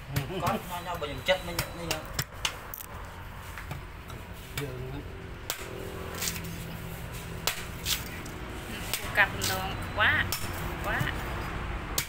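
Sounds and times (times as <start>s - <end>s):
cleaver chopping coconut husk: 0.0s - 0.8s, 1.5s - 2.7s, 3.6s - 12.0s.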